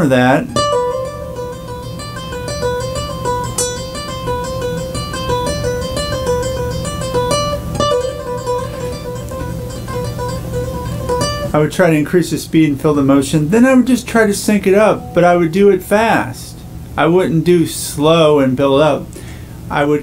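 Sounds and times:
acoustic guitar fast picking: 0:00.0 - 0:12.0, 0:13.0 - 0:17.5.

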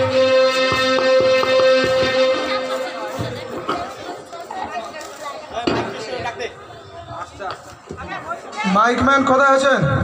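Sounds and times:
harmonium reed note: 0:00.0 - 0:03.6.

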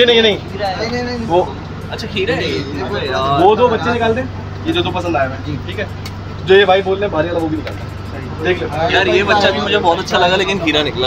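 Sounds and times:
men talking: 0:00.0 - 0:11.0
steady low hum: 0:00.0 - 0:11.0.

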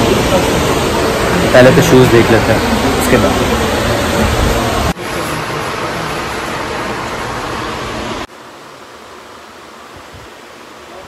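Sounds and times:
steady rushing noise: 0:00.0 - 0:08.5.

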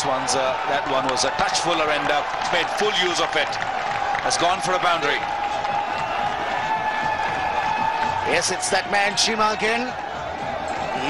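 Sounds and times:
stadium crowd cheering: 0:00.0 - 0:11.0.

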